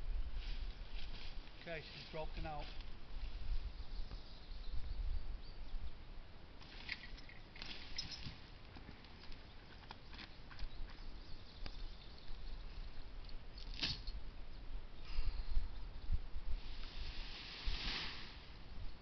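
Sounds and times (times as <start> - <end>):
leafy branches rustling: 0.2 - 3.7, 6.6 - 9.7, 16.5 - 18.8.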